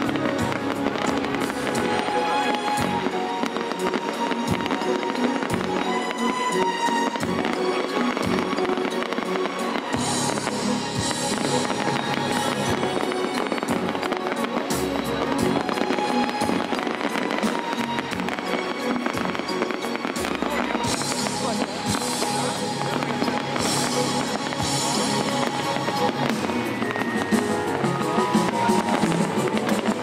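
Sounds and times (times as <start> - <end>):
fireworks bursting and crackling: 0.0 - 30.0
music: 0.0 - 30.0.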